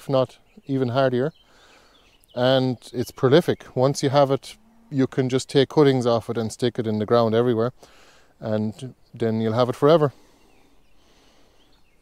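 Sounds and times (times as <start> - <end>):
faint distant bird chirps: 0.0 - 12.0.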